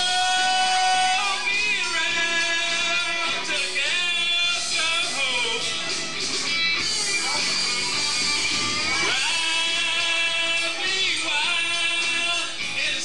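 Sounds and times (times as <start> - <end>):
guitar: 0.0 - 13.0
upbeat country backing track: 0.0 - 13.0.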